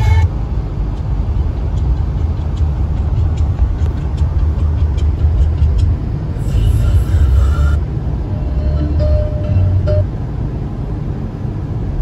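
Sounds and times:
car tyres and engine rumble: 0:00.0 - 0:12.0.

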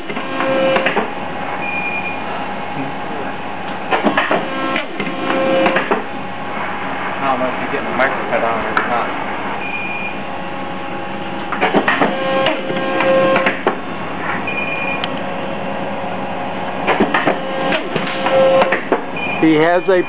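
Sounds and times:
paper cutter clattering and whining: 0:00.0 - 0:01.1, 0:03.9 - 0:06.1, 0:11.5 - 0:13.8, 0:16.8 - 0:19.1
machine hum: 0:00.0 - 0:20.0
short high beep: 0:01.6 - 0:02.2, 0:09.6 - 0:10.2, 0:14.5 - 0:15.0, 0:19.2 - 0:20.0.

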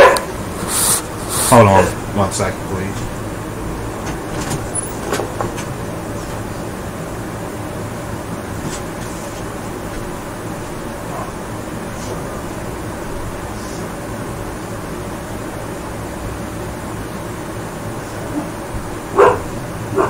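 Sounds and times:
dog barking and yelping: 0:00.0 - 0:00.4, 0:01.5 - 0:02.0, 0:18.3 - 0:20.0
steady background hum: 0:00.0 - 0:20.0.

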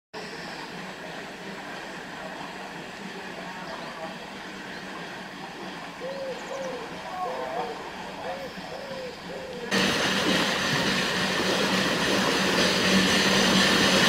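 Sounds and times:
steam hissing from boiler: 0:00.2 - 0:14.0
bird cooing: 0:06.0 - 0:09.7.

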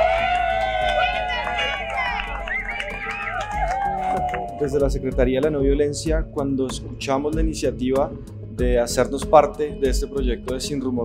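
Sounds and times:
group of people cheering: 0:00.0 - 0:05.2.

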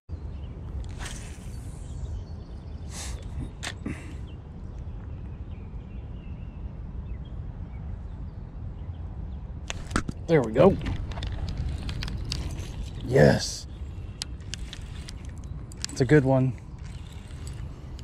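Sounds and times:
fishing line swishing off reel: 0:00.8 - 0:02.1
short reel clicks: 0:14.2 - 0:18.0.

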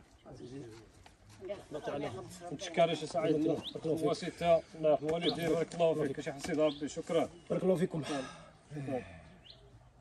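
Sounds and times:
men talking: 0:00.1 - 0:01.0, 0:01.6 - 0:09.4.

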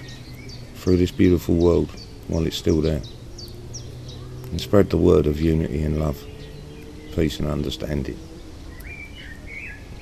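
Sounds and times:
low background noise: 0:00.0 - 0:10.0
songbird chirping: 0:00.0 - 0:10.0.

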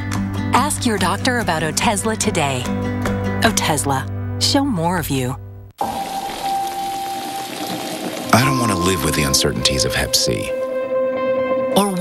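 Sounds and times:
rain falling on an umbrella: 0:05.8 - 0:10.0.

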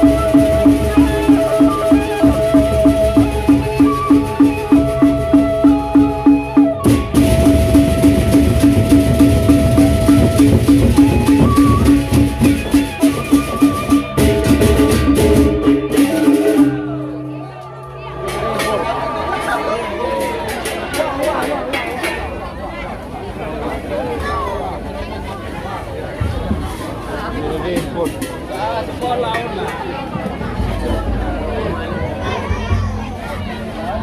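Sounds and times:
jangling percussion: 0:00.0 - 0:22.3
pitched metal beat: 0:00.0 - 0:22.4
large barrel drums: 0:00.0 - 0:24.4, 0:25.9 - 0:34.0
gong tones: 0:14.1 - 0:20.0.

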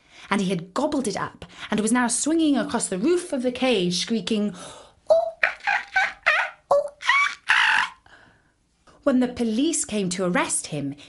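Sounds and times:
monkey screaming: 0:05.2 - 0:08.0.

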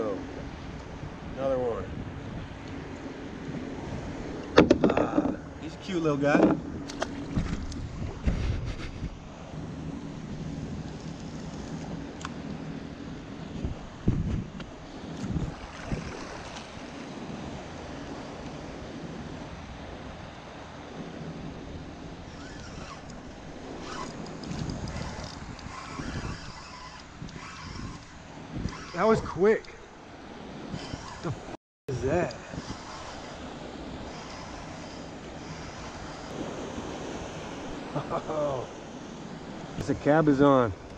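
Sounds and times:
wind blowing on microphone: 0:00.0 - 0:40.9
waves lapping against kayak: 0:01.9 - 0:40.9
low gusts or thumps: 0:03.5 - 0:12.2, 0:13.1 - 0:17.8, 0:21.0 - 0:29.9.

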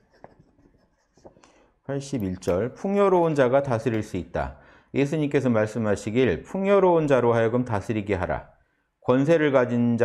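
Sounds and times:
man speaking: 0:01.9 - 0:08.5, 0:09.1 - 0:10.0.

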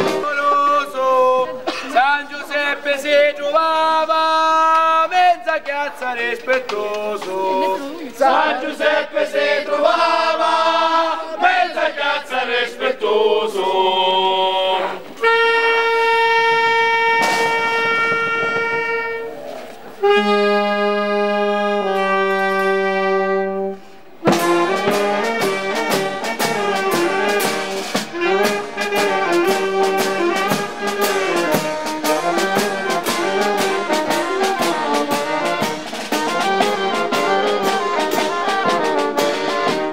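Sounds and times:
street band playing lively tune: 0:00.0 - 0:02.0, 0:06.2 - 0:11.6, 0:15.0 - 0:39.9.

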